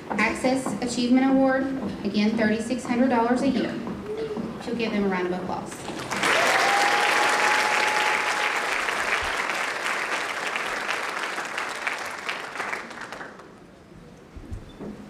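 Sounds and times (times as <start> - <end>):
audience applauding: 5.8 - 13.7.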